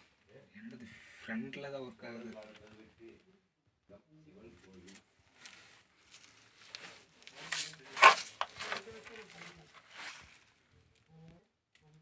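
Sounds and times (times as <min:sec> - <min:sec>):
rustling and scraping: 0:04.6 - 0:11.0
faint low voice: 0:11.0 - 0:12.0.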